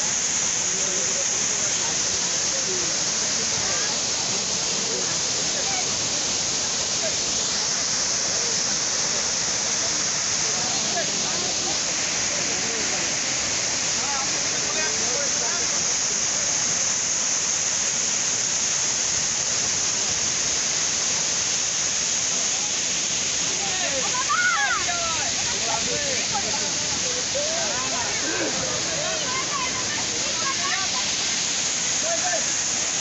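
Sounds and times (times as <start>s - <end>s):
waterfall rushing over rocks: 0.0s - 33.0s
faint voices: 0.6s - 16.4s, 22.3s - 33.0s.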